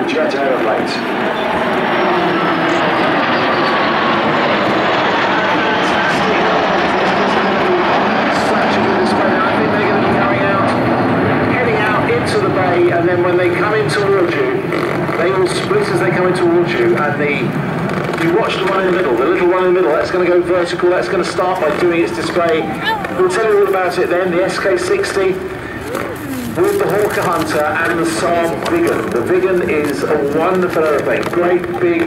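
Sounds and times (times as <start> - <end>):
jet aircraft flypast: 0.0 - 32.0
voices: 18.2 - 32.0.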